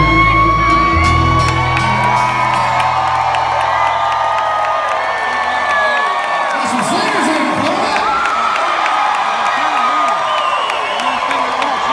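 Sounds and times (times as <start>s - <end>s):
audience whooping and cheering: 0.0s - 11.9s.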